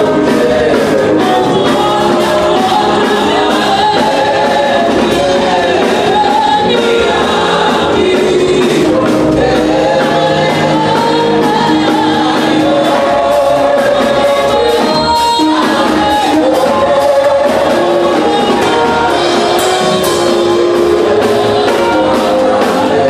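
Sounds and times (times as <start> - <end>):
gospel song sung into microphones: 0.0 - 23.0
group singing: 0.0 - 23.0.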